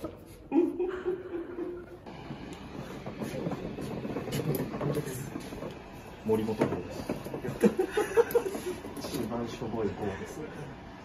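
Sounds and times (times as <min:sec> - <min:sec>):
cart wheels rolling on concrete: 0:01.6 - 0:10.1.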